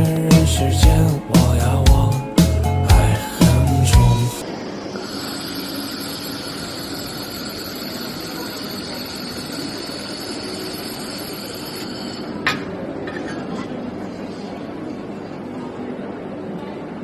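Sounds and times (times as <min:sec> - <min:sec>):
laser welder running: 0:04.7 - 0:12.4.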